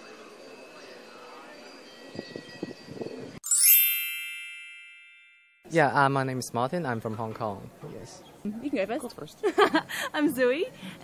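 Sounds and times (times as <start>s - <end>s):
faint outdoor ambience: 0.0s - 3.4s, 5.7s - 11.0s
bell-like ding: 3.4s - 5.7s.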